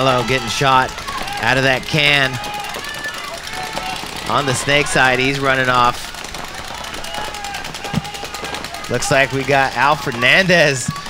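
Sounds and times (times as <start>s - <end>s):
paintball guns firing: 0.0s - 11.0s.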